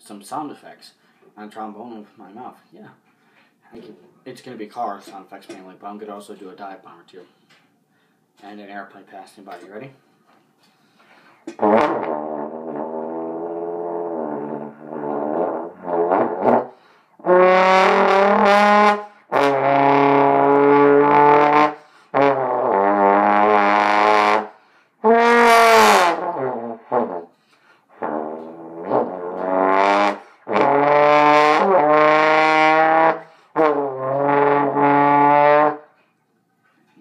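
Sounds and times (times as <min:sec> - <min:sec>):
trombone sliding notes: 0:11.5 - 0:27.3, 0:27.9 - 0:35.9.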